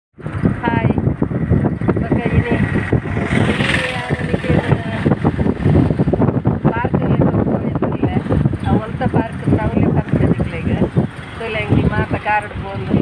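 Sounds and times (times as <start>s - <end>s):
car engine and road rumble: 0.2s - 13.0s
person speaking: 3.5s - 5.2s.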